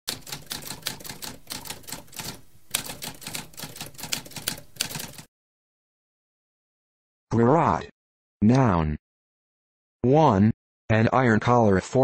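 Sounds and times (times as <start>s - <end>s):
typewriter keys clicking: 0.1s - 5.3s.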